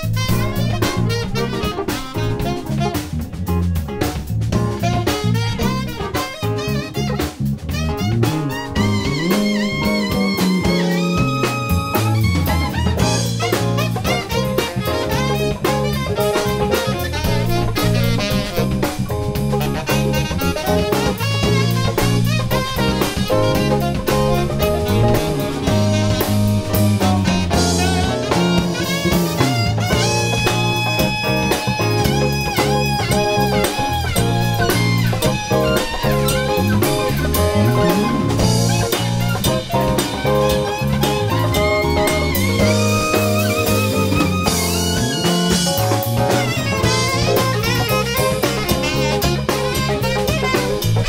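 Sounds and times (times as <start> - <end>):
bass: 0.0 - 51.0
drum kit: 0.0 - 51.0
electric guitar: 0.0 - 51.0
keyboard: 0.0 - 51.0
saxophone lead lines: 0.0 - 51.0.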